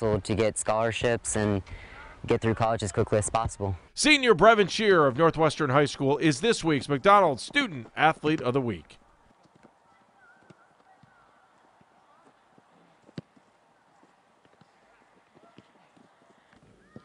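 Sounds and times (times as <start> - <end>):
faint distant voices: 6.6 - 17.0.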